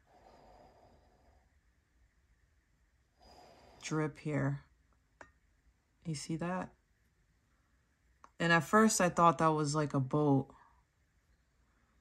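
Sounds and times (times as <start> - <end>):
faint breath: 0.0 - 1.7, 3.1 - 3.9.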